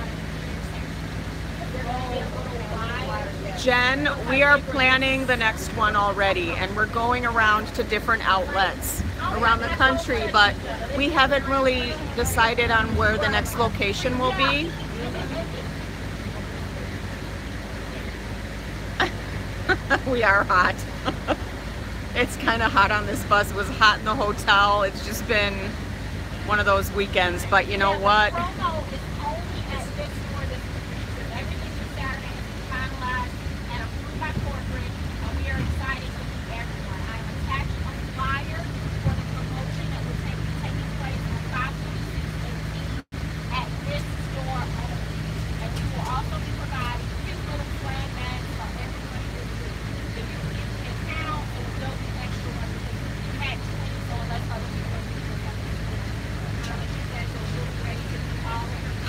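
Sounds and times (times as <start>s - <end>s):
bus engine and road noise: 0.0s - 59.0s
passengers chattering: 0.0s - 59.0s.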